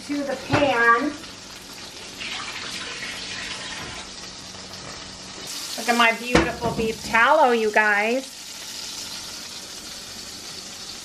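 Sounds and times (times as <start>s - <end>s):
fat sizzling in a frying pan: 0.0s - 11.0s.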